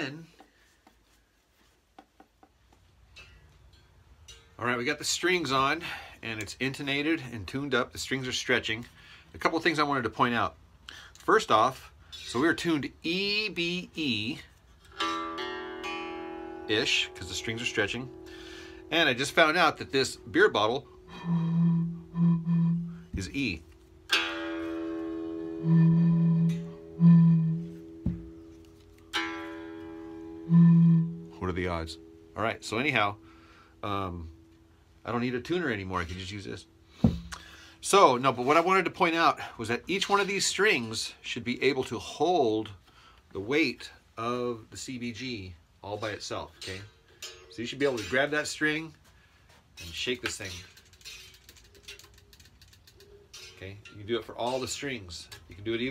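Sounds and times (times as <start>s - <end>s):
plucked guitar strings ringing: 14.9s - 38.3s
low hoots from blown bottle: 20.7s - 23.3s, 25.4s - 28.2s, 30.4s - 31.4s.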